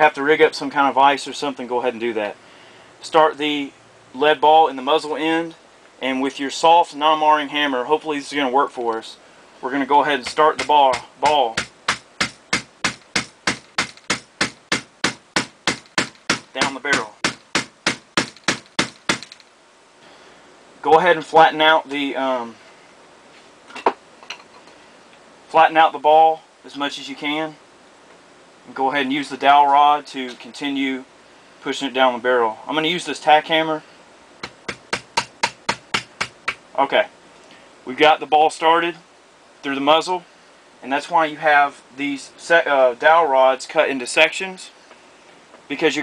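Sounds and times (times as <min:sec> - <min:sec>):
hammer tapping on a rod: 0:10.2 - 0:19.4, 0:34.4 - 0:36.6.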